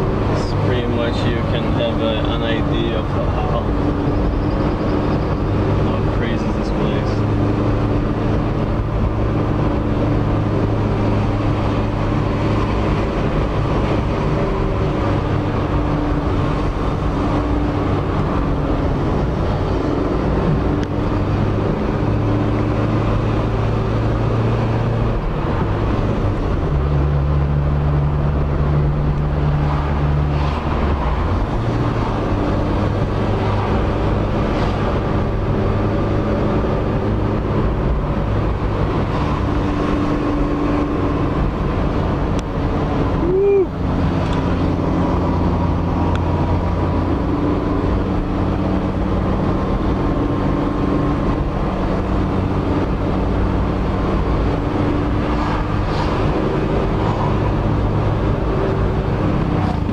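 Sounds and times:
car engine hum: 0:00.0 - 0:59.9
tyre and road rumble: 0:00.0 - 0:59.9.

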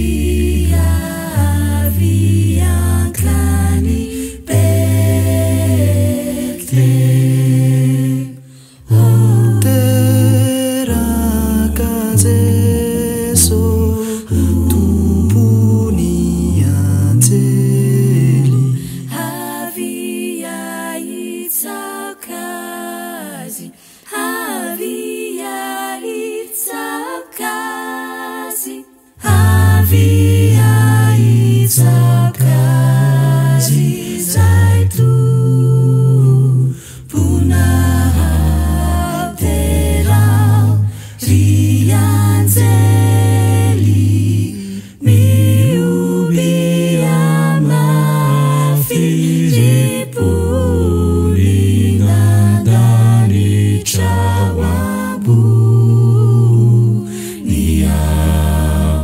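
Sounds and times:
a cappella ensemble singing: 0:00.0 - 0:59.0
vocal group humming a chord: 0:00.0 - 0:59.0.

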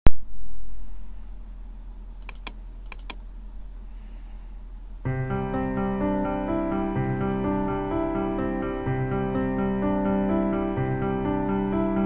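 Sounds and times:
faint low hum: 0:00.1 - 0:12.0
computer mouse clicks: 0:02.2 - 0:03.2.

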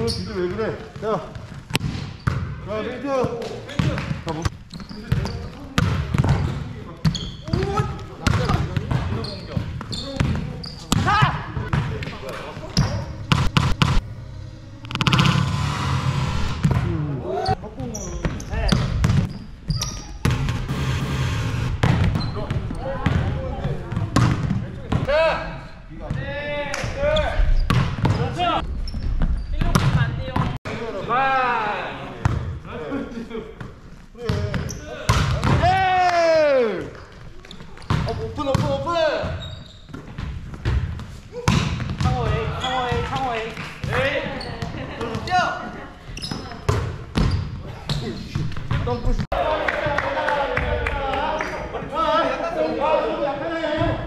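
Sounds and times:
volleyball slaps: 0:10.2 - 0:14.0, 0:21.8 - 0:23.3, 0:40.6 - 0:42.1.

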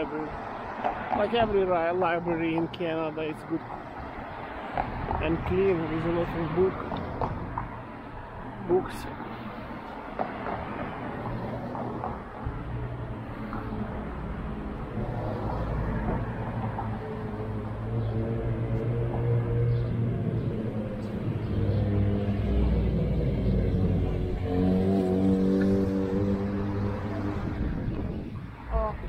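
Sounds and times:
road traffic passing: 0:00.0 - 0:29.0.

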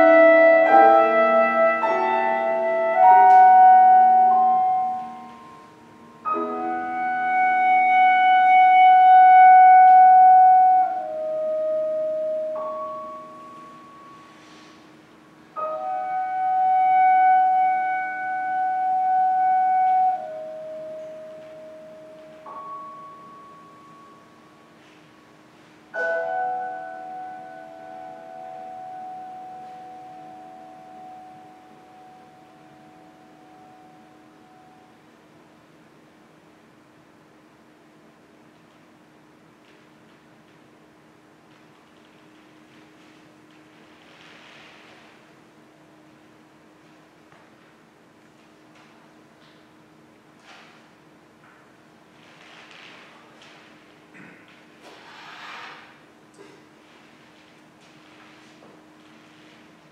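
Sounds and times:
clarinet: 0:00.0 - 0:14.8, 0:15.6 - 0:25.0
piano: 0:00.0 - 0:59.9.

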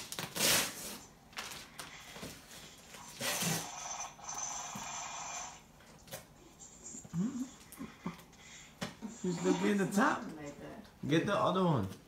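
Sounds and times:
wrapping paper tearing: 0:00.0 - 0:01.8.

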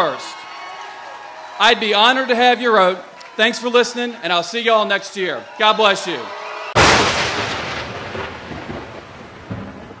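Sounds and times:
thunder crack: 0:06.8 - 0:10.0
thunder rumbling: 0:06.8 - 0:10.0.

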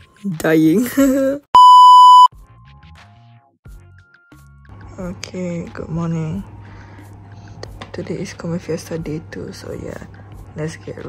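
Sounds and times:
electronic bleep: 0:01.6 - 0:02.3
faint background music: 0:04.7 - 0:11.0.

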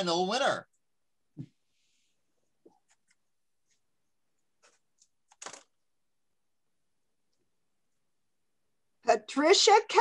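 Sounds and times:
paper rustling and clicks: 0:04.6 - 0:05.8.

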